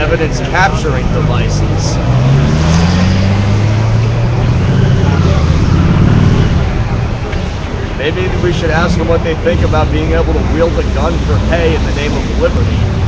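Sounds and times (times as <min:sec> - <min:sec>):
vehicle engine running: 0:00.0 - 0:13.0
voices in background: 0:00.0 - 0:13.0.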